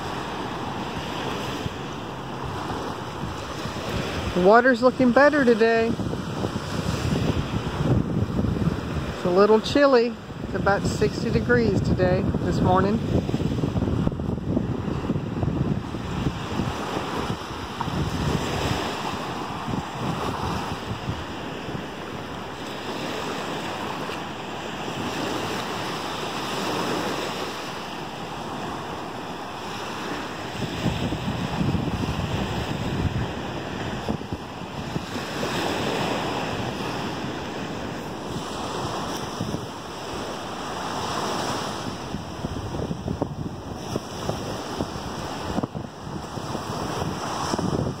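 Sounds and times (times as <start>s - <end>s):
small waves breaking on sand: 0.0s - 48.0s
wind buffeting microphone: 0.0s - 48.0s.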